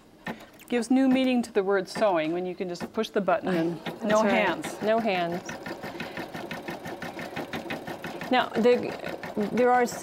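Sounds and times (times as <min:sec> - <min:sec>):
embroidery machine needle striking: 0:00.2 - 0:03.2, 0:03.8 - 0:10.0.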